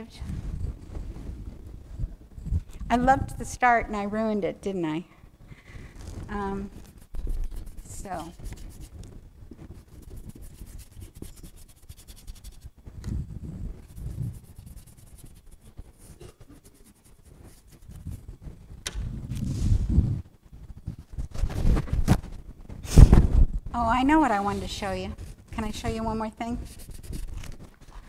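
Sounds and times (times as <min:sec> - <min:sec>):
paintbrush scrubbing on paper: 0:06.1 - 0:12.8, 0:13.4 - 0:18.7, 0:24.0 - 0:27.9.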